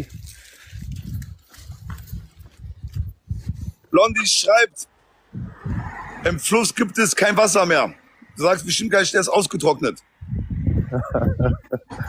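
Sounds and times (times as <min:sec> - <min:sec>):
low rumbling thumps on microphone: 0:00.9 - 0:03.8, 0:05.3 - 0:06.3, 0:10.2 - 0:12.0.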